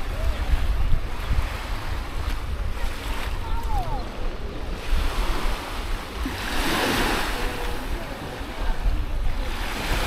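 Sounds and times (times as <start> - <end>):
small waves washing on beach: 0.0 - 10.0
wind buffeting microphone: 0.0 - 10.0.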